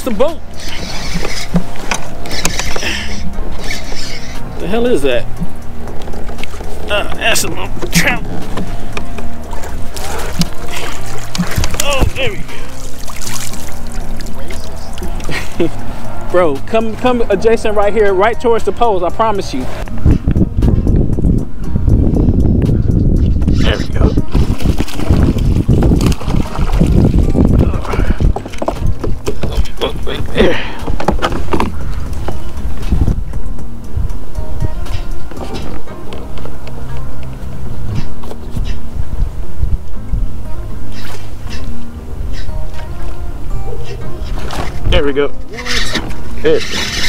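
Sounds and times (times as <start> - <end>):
background music with held tones: 0.0 - 47.0
water noise: 0.0 - 47.0
fish splashing and thrashing: 0.5 - 4.5, 7.8 - 16.1, 24.2 - 29.8, 44.2 - 44.9, 45.7 - 47.0
man's voice: 11.8 - 12.6.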